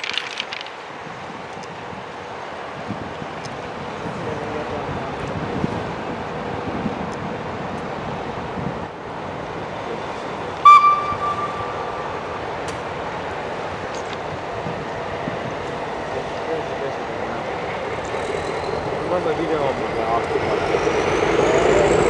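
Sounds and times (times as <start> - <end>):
locomotive engine running: 5.8 - 22.0
locomotive horn blast: 10.6 - 12.4.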